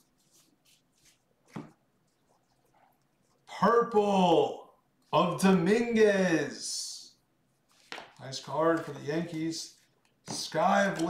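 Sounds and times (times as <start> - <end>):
trading cards sliding swishes: 0.0 - 1.8.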